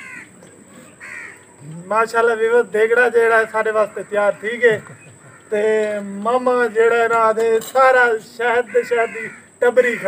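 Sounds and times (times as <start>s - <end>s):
crow cawing: 0.0s - 1.8s, 3.4s - 6.0s, 8.4s - 10.0s.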